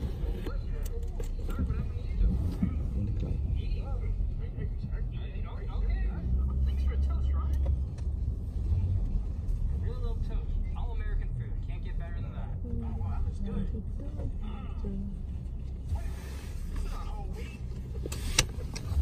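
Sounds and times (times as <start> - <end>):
car road rumble inside cabin: 0.0 - 19.0.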